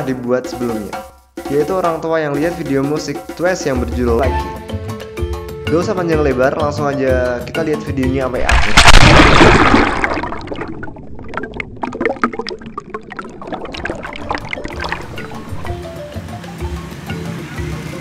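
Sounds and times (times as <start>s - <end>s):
music: 0.0s - 8.7s, 14.2s - 18.0s
underwater bubbling: 8.5s - 16.0s.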